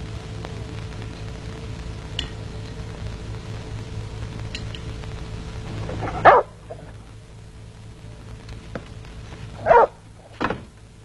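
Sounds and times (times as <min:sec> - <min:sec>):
dog barking: 0:06.2 - 0:06.6, 0:09.6 - 0:10.0.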